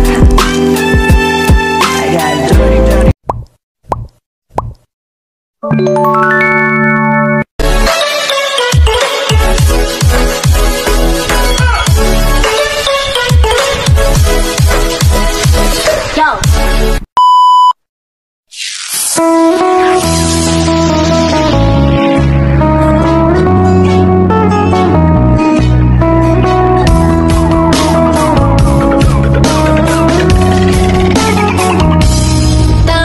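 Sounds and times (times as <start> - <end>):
music: 0.0 - 3.2, 5.6 - 17.0, 19.2 - 33.0
loud steady beep: 17.2 - 17.8.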